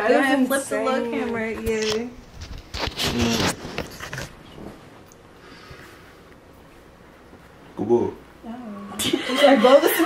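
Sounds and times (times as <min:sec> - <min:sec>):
rubbing on phone microphone: 0:02.2 - 0:04.3.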